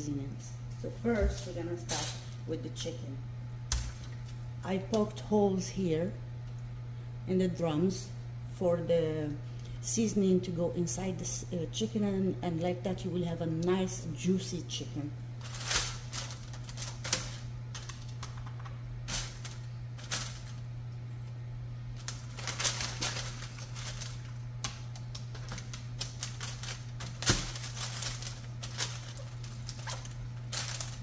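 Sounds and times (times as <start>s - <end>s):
steady low hum: 0.0s - 31.0s
paper and foil crinkling: 15.4s - 20.7s, 21.9s - 31.0s.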